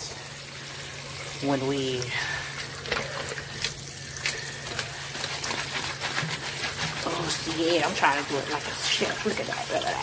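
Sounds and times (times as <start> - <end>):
kitchen tap running: 0.0 - 10.0
water splashing into steel sink: 0.0 - 10.0.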